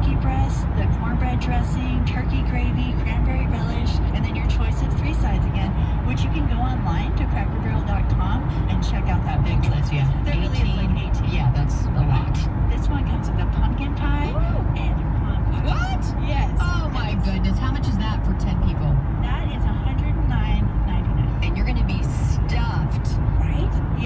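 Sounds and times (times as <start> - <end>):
indistinct voices: 0.0 - 24.0
vehicle road and engine rumble: 0.0 - 24.0.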